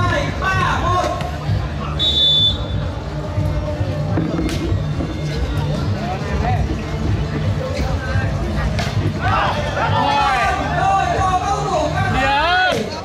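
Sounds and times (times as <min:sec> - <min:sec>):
background music: 0:00.0 - 0:13.0
crowd chatter: 0:00.0 - 0:13.0
referee's whistle blast: 0:02.0 - 0:02.8.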